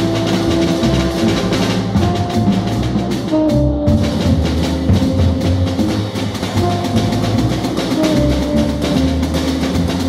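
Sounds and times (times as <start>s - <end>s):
double bass notes: 0.0s - 10.0s
drum kit played with sticks: 0.0s - 10.0s.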